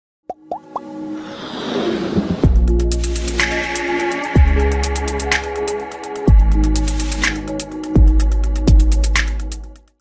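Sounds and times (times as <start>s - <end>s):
plops rising in pitch: 0.3s - 0.9s
music riser: 1.0s - 7.7s.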